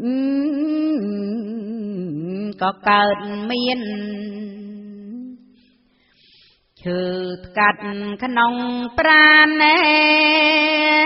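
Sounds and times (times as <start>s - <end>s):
woman chanting verse: 0.1s - 5.4s, 6.8s - 11.0s.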